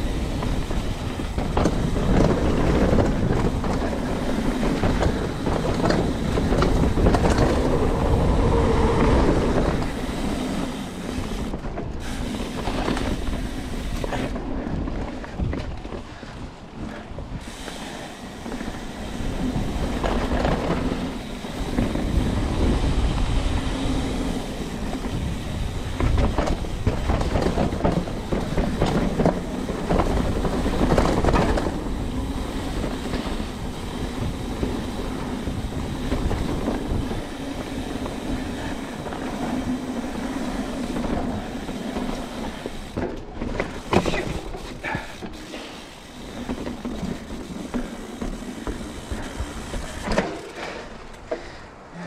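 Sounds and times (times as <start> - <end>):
wind buffeting microphone: 0.0 - 45.0
bike rattling over bumps: 0.0 - 52.0
bike tyres rumbling on dirt: 0.0 - 52.0.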